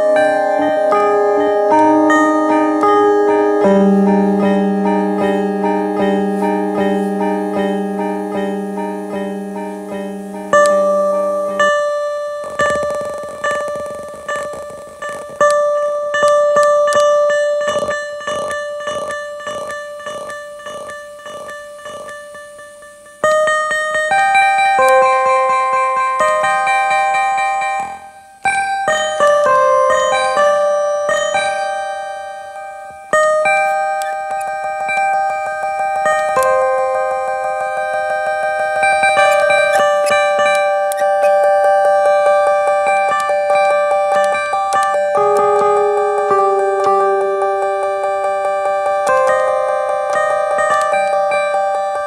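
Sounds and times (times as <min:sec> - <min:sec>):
rising synth notes with echoes: 0:00.0 - 0:17.8, 0:29.3 - 0:52.0
synth note with delay echoes: 0:00.0 - 0:22.1, 0:31.4 - 0:52.0.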